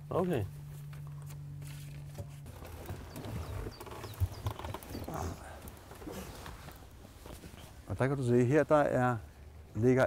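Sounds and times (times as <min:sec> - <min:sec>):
golf cart motor hum: 0:00.1 - 0:07.8
knocks and creaks: 0:00.9 - 0:07.8.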